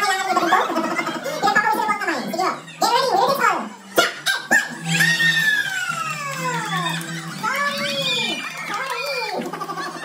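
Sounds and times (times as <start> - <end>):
excited high-pitched shrieks: 3.9 - 8.9.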